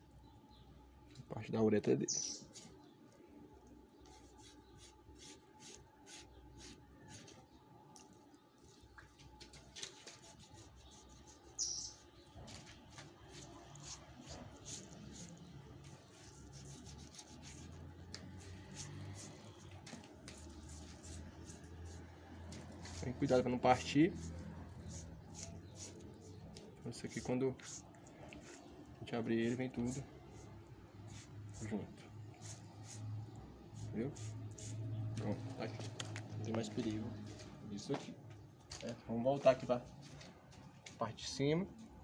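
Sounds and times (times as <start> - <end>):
bird chirp: 0.0 - 4.9, 10.2 - 17.6.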